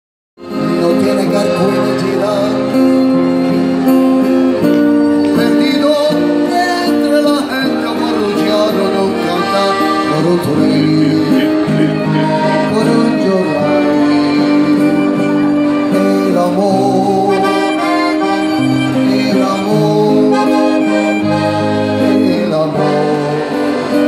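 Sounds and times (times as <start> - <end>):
accordion chords: 0.4 - 24.0
strummed acoustic guitar: 0.4 - 24.0
violin melody: 0.4 - 24.0.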